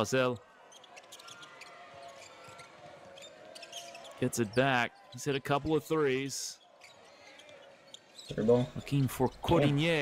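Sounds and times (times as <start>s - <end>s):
low crowd background: 0.0s - 10.0s.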